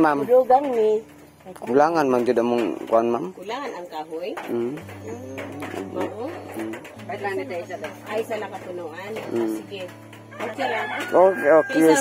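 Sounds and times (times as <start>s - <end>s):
people talking: 2.6s - 12.0s.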